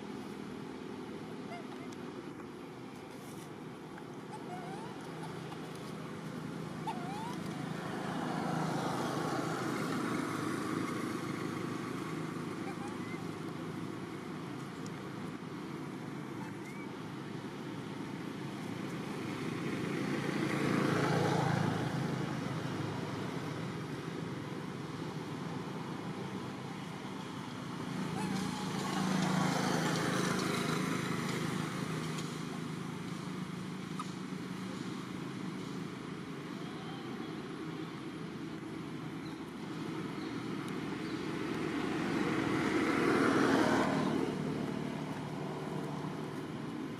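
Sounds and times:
road traffic rumble: 0.0s - 46.9s
vehicles passing by: 0.0s - 46.9s.

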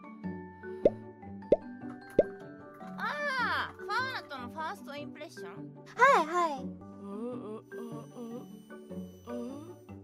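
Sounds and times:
gentle background music: 0.0s - 10.0s.

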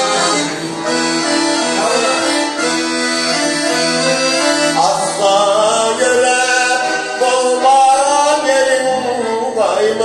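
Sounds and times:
piano accordion: 0.0s - 10.0s
man singing long held notes: 4.7s - 10.0s.

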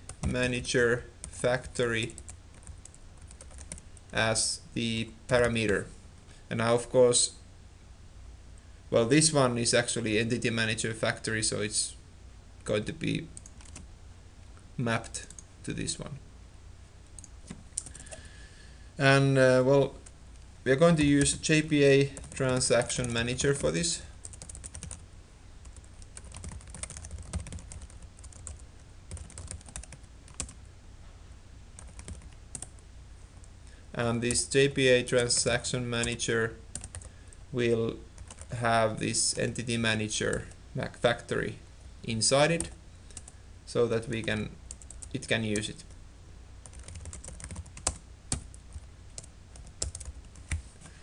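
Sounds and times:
low steady hum: 0.0s - 51.0s
computer keyboard typing: 2.2s - 3.8s, 13.4s - 13.8s, 22.2s - 25.0s, 25.9s - 30.6s, 31.8s - 32.7s, 35.4s - 37.1s, 38.2s - 38.5s, 44.7s - 45.7s, 46.6s - 50.6s.

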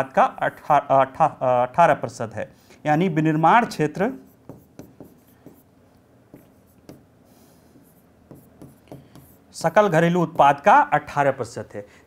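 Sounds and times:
stylus tapping on screen: 4.4s - 5.6s, 6.3s - 7.1s, 7.8s - 9.4s.

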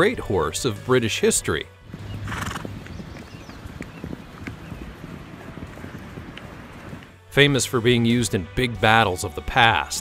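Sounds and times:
horse hoofbeats on grass: 1.8s - 9.9s.

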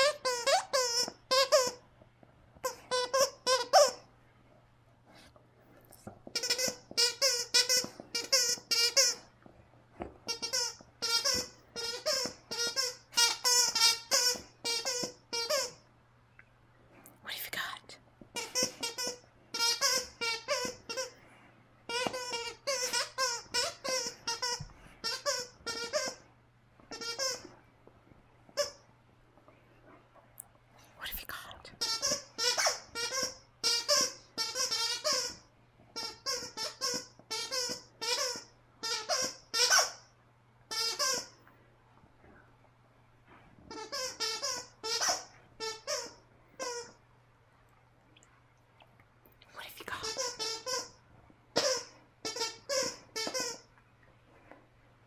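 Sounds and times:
dog chewing toy: 0.0s - 1.8s, 2.5s - 4.0s, 5.1s - 15.8s, 18.3s - 21.2s, 21.9s - 26.2s, 26.9s - 27.6s, 31.8s - 40.0s, 40.7s - 41.4s, 43.7s - 47.0s, 49.9s - 53.8s
squeaky toy squeaking: 0.0s - 1.8s, 2.6s - 4.0s, 6.3s - 9.2s, 10.3s - 15.8s, 18.4s - 21.1s, 21.9s - 26.2s, 26.9s - 27.5s, 28.6s - 28.8s, 31.8s - 35.4s, 36.0s - 40.1s, 40.7s - 41.4s, 43.7s - 47.0s, 50.0s - 53.7s.

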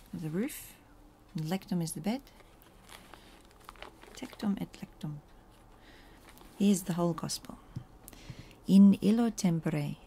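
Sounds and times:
paper rustling and crinkling: 2.4s - 4.6s, 6.2s - 6.6s.

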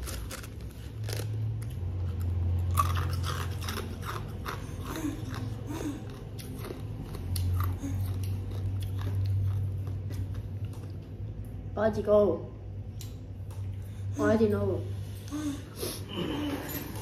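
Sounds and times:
crunching and chewing crisp food: 0.0s - 11.5s
steady low hum: 0.0s - 17.0s.

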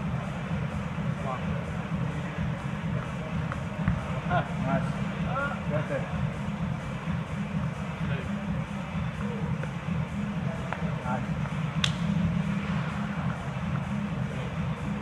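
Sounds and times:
faint voices: 0.0s - 15.0s
low gym hum: 0.0s - 15.0s.

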